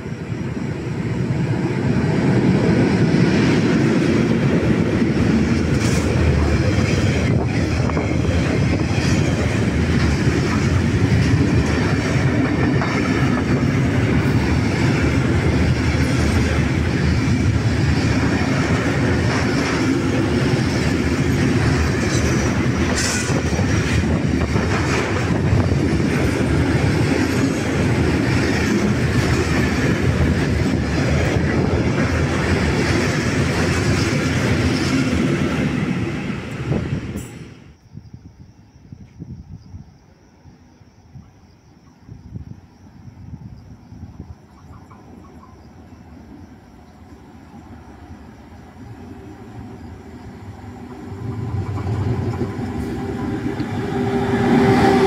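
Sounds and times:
train wheels rumbling on rails: 0.0s - 37.8s, 42.0s - 55.0s.

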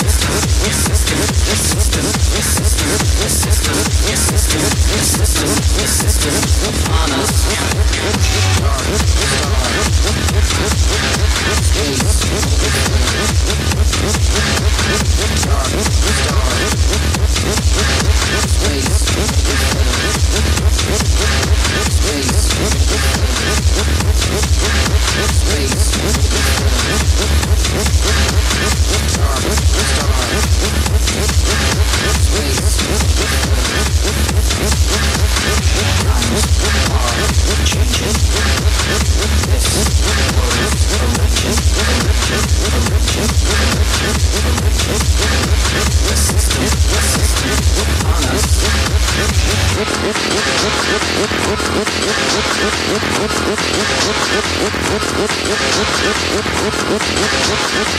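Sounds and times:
techno beat with heavy bass: 0.0s - 57.9s.

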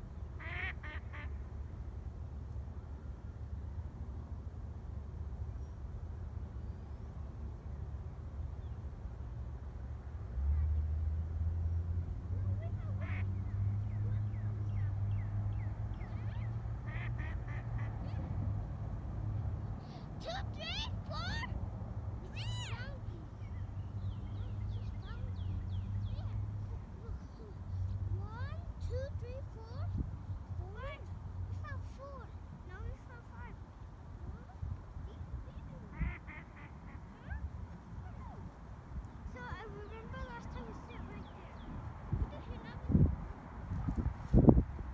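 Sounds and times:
ducks quacking: 12.6s - 13.5s, 16.2s - 18.4s, 35.8s - 38.2s.

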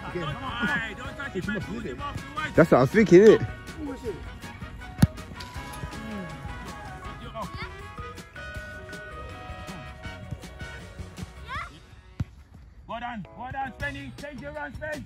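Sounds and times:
music: 0.0s - 15.0s
football kick thud: 5.0s - 5.4s.

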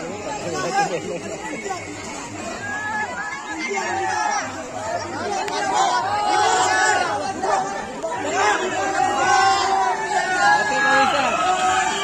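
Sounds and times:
crowd chatter and shouting: 0.0s - 12.0s.

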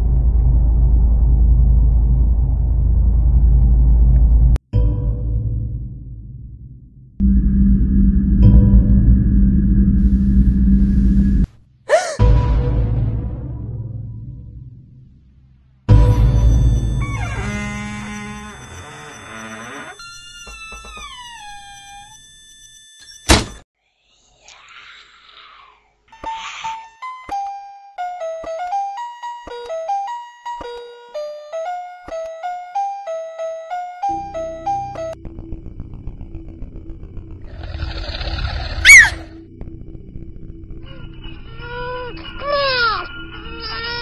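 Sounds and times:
low stinger: 0.0s - 11.5s, 35.0s - 40.6s
horror film score: 0.0s - 22.4s, 34.2s - 44.0s
woman screaming: 11.9s - 12.2s.

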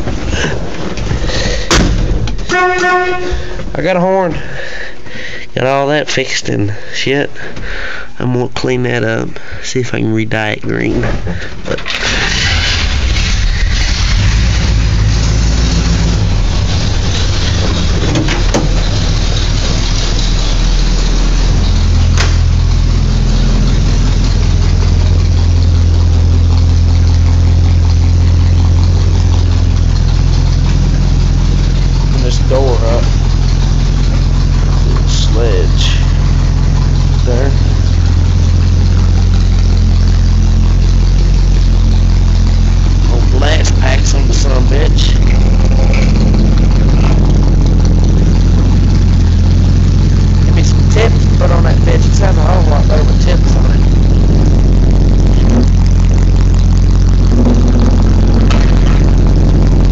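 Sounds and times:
truck engine idling: 0.0s - 6.0s, 11.2s - 59.9s.

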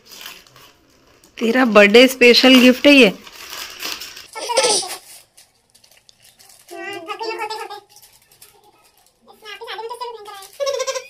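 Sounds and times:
gift wrapping crinkling: 0.0s - 11.0s.

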